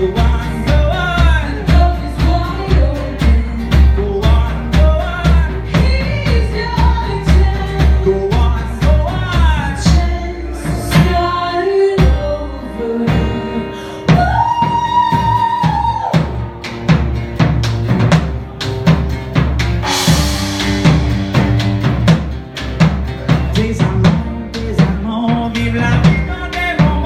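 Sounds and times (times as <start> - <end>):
acoustic guitar: 0.0 - 27.0
drums keeping a steady beat: 0.0 - 27.0.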